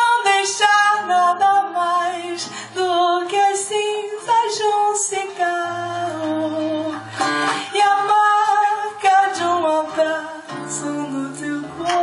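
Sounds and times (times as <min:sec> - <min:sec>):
classical guitar playing: 0:00.0 - 0:12.0
woman singing into microphone: 0:00.0 - 0:12.0.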